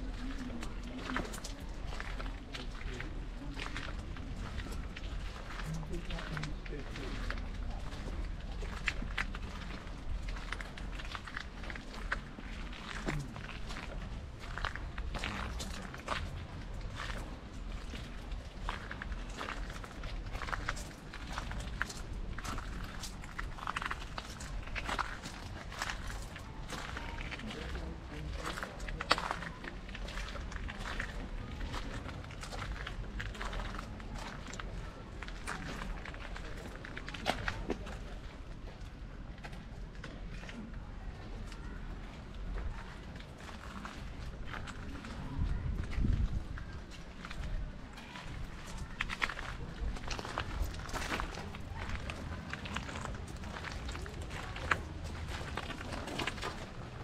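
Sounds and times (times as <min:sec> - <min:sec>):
footsteps crunching on gravel: 0:00.0 - 0:38.4, 0:39.5 - 0:57.0.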